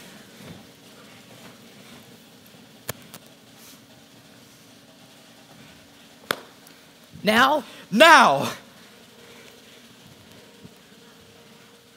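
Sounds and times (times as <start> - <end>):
faint steady hum: 0.0 - 11.9.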